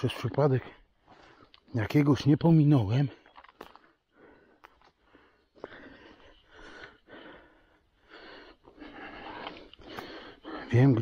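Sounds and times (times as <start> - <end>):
man breathing heavily: 0.7 - 1.7, 3.7 - 11.0.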